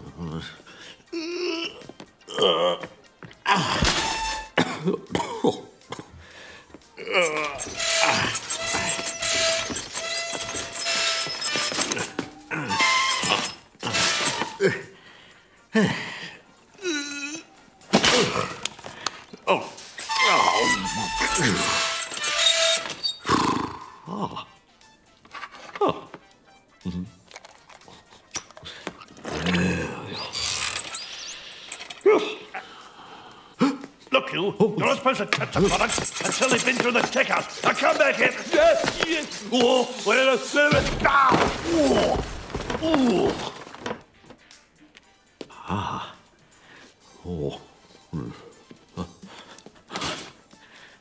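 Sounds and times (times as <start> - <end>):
man coughing: 4.6 - 6.1
shopping trolley rattling: 7.3 - 14.6, 20.0 - 23.1, 35.4 - 44.0.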